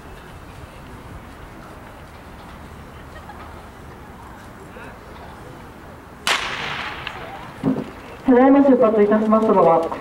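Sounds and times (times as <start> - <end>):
starter's pistol crack: 6.3 - 7.8.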